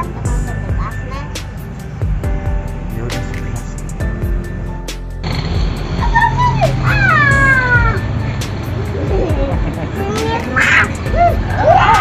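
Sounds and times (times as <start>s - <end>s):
young children squealing: 6.1s - 8.0s, 10.2s - 12.0s.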